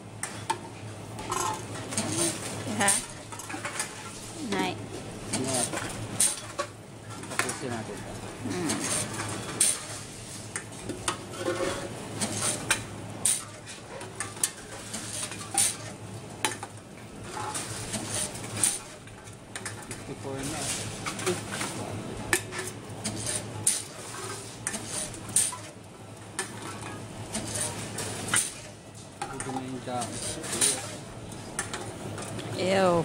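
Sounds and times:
cans clanking in vending machine: 0:01.2 - 0:04.7, 0:05.3 - 0:10.1, 0:10.8 - 0:25.8, 0:26.4 - 0:31.0.

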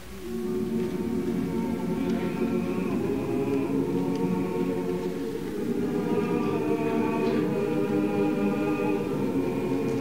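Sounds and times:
choir singing slow chords: 0:00.0 - 0:10.0.

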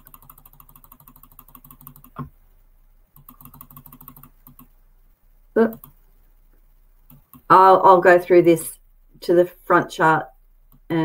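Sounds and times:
keyboard key clicking rapidly: 0:00.0 - 0:02.2, 0:03.2 - 0:04.7.

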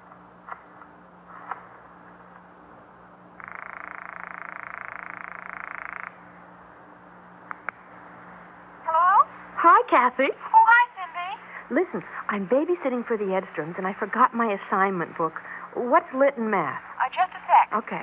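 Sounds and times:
low steady hum: 0:00.0 - 0:18.0
telephone ringing: 0:03.4 - 0:06.2.

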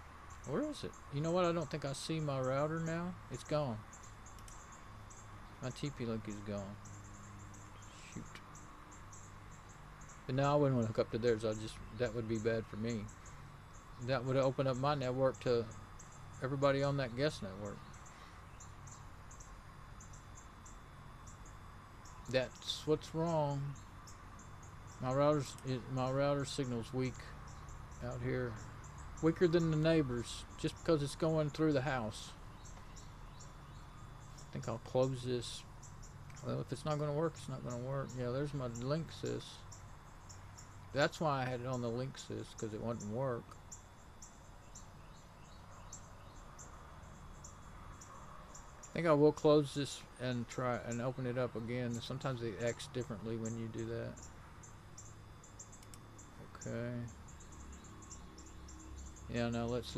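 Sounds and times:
insect chirping: 0:00.0 - 0:59.9
low steady hum: 0:00.0 - 0:59.9.

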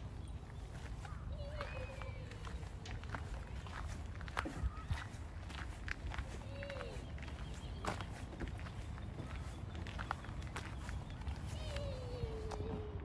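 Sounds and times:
footsteps crunching: 0:00.0 - 0:12.9.

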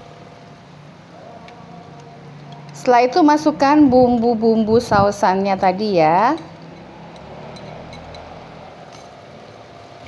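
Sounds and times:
sauce sizzling in a wok: 0:00.0 - 0:03.5
spoon scraping glass bowl: 0:06.3 - 0:09.1.

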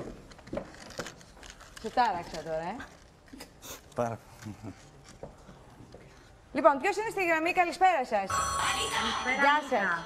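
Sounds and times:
telephone ringing tone: 0:08.3 - 0:10.0.

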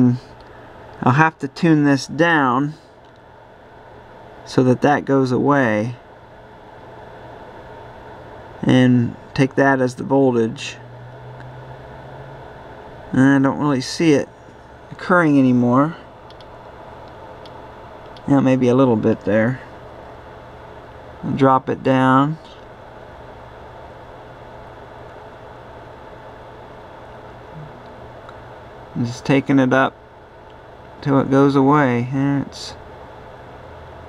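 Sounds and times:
background hum and hiss: 0:00.0 - 0:34.0
low steady tone: 0:27.1 - 0:29.7
brief low sound: 0:27.5 - 0:28.0
faint high steady tone: 0:27.5 - 0:28.0.

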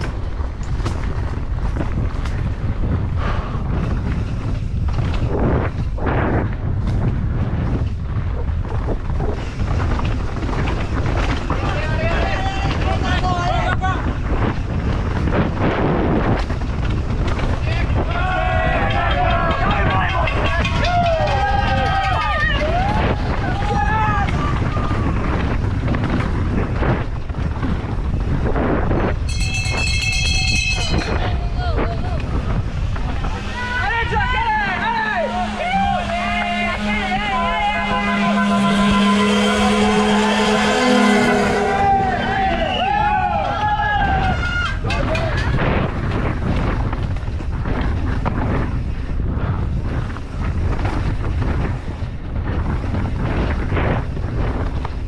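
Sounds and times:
bike tyres on dirt trail: 0:00.0 - 0:55.0
wind on camera: 0:00.0 - 0:55.0
spectators shouting and cheering: 0:17.6 - 0:25.4, 0:30.2 - 0:45.7
short high ringing tone: 0:29.3 - 0:31.2
long horn-like tone: 0:34.6 - 0:43.8.

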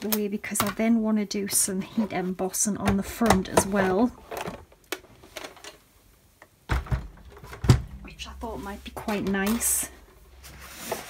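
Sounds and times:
plastic plates knocking and clattering: 0:02.8 - 0:05.8.

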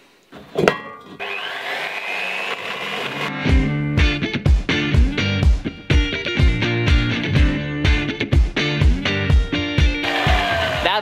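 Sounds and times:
bandsaw motor running: 0:01.2 - 0:03.3, 0:10.0 - 0:11.0
background music: 0:02.9 - 0:11.0.

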